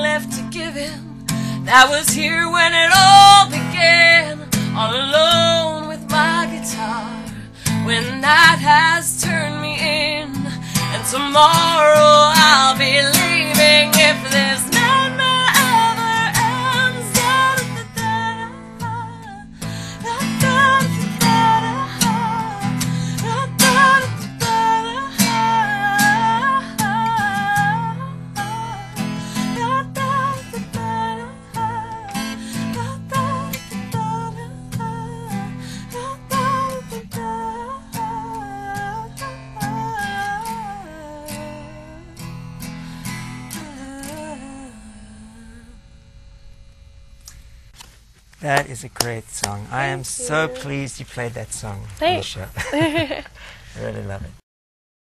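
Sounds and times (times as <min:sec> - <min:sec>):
wordless sung melody: 0:00.0 - 0:42.3, 0:43.4 - 0:45.8, 0:49.0 - 0:53.8
acoustic guitar strummed: 0:00.0 - 0:47.6, 0:48.4 - 0:52.4.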